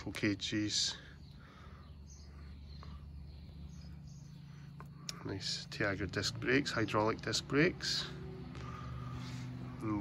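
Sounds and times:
faint chirps: 0:00.0 - 0:10.0
steady low hum: 0:00.0 - 0:10.0.

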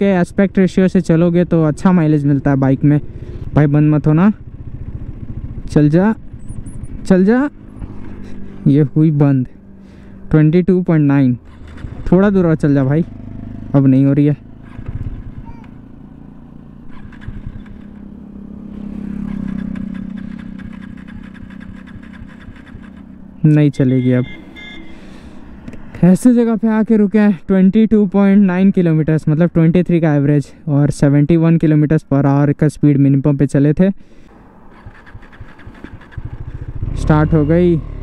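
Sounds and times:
vehicle engine humming: 0:00.0 - 0:38.0
motorcycle engine cranking: 0:11.4 - 0:12.4, 0:16.8 - 0:18.2, 0:19.1 - 0:23.3, 0:34.6 - 0:38.0
engine firing: 0:11.4 - 0:13.9, 0:16.8 - 0:23.3, 0:34.3 - 0:38.0.

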